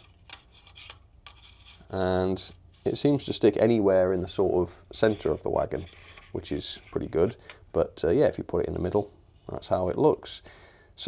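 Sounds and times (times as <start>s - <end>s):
faint plastic scraping: 4.9s - 7.5s.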